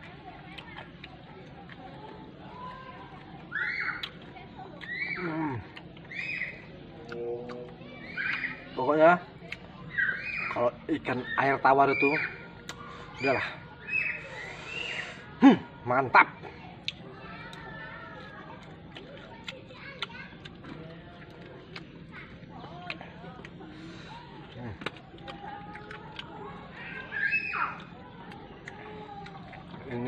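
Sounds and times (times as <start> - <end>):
person chewing food: 0.0 - 6.2, 6.9 - 9.7, 12.6 - 15.3, 16.7 - 30.0
faint background voices: 0.0 - 30.0
mouth clicks and smacks: 3.2 - 6.2, 12.6 - 12.9, 24.4 - 26.9.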